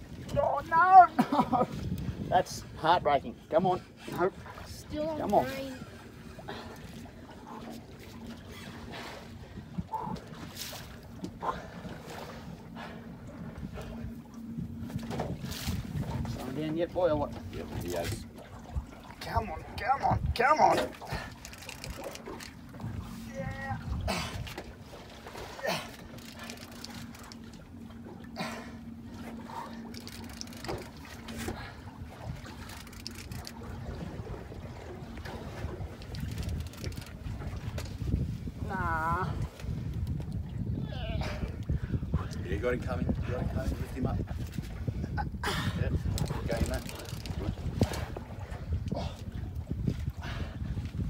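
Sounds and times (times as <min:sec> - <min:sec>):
wind noise: 0:00.0 - 0:06.8, 0:08.4 - 0:27.4, 0:29.2 - 0:51.0
boat motor humming: 0:00.0 - 0:42.8
water: 0:00.0 - 0:51.0.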